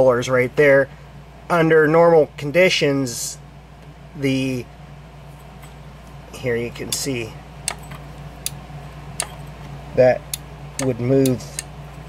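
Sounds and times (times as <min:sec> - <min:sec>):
steady low hum: 0:00.0 - 0:12.0
sharp light clicks: 0:06.9 - 0:07.8, 0:09.2 - 0:09.4, 0:10.3 - 0:11.7.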